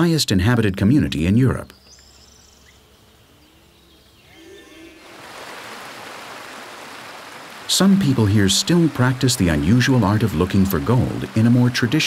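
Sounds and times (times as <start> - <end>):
faint calls: 1.5 - 12.0
stream rushing over stones: 5.0 - 12.0.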